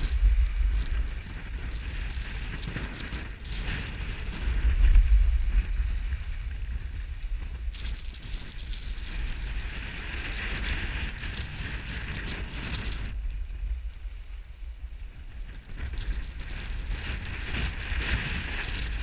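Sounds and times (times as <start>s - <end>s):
skis scraping on snow: 0.0s - 19.0s
wind buffeting microphone: 0.0s - 19.0s.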